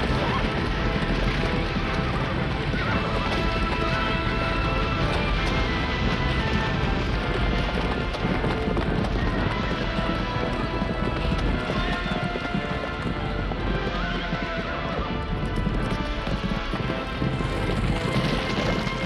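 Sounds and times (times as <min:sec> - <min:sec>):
horses galloping hoofbeats: 0:00.0 - 0:19.0
horses neighing: 0:00.0 - 0:19.0.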